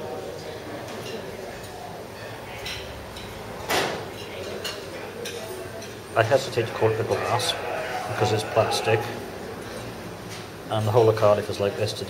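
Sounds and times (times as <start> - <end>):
murmur of background voices: 0.0 - 12.0.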